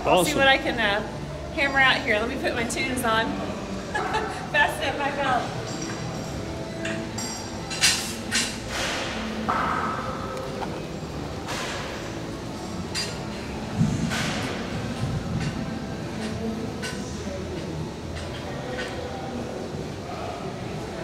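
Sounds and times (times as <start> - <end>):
gym background noise: 0.0 - 21.0.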